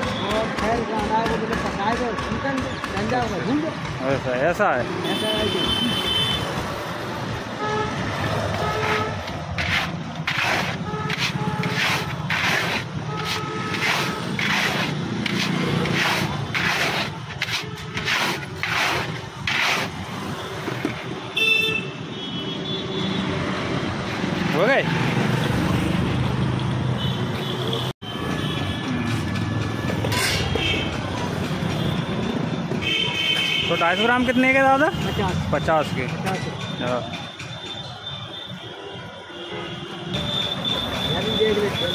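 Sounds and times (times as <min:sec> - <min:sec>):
street traffic: 0:00.0 - 0:41.9
vehicle horn toots: 0:05.0 - 0:06.6, 0:07.6 - 0:09.3, 0:21.2 - 0:23.2
sieve scraping through sand: 0:09.6 - 0:20.0.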